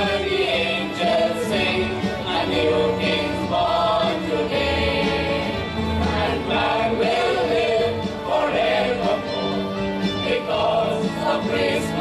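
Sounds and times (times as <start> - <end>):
mixed choir singing a carol: 0.0 - 12.0.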